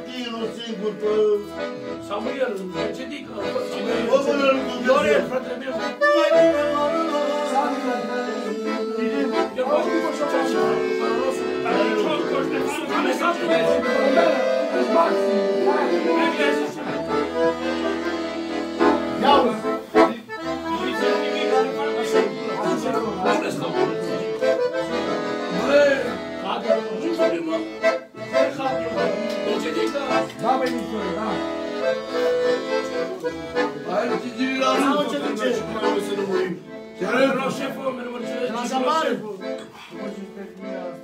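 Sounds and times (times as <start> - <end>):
accordion playing a tune: 0.0 - 41.0.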